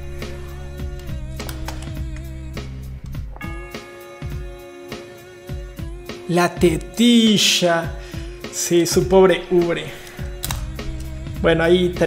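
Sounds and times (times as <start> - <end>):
background music with drum beat: 0.0 - 12.0.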